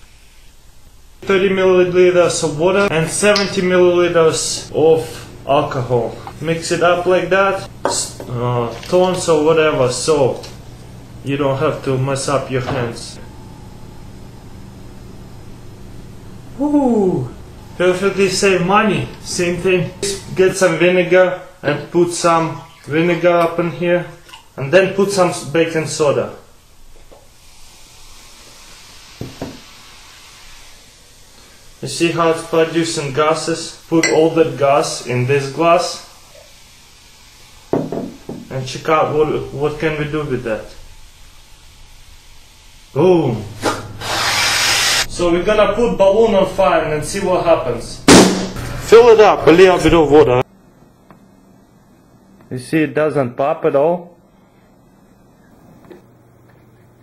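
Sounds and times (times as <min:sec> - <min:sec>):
fizzing hiss of bubbling: 0:27.2 - 0:33.2.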